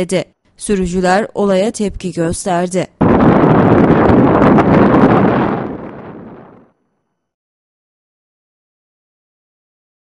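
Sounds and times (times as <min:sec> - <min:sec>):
wind buffeting microphone: 0:03.0 - 0:06.7.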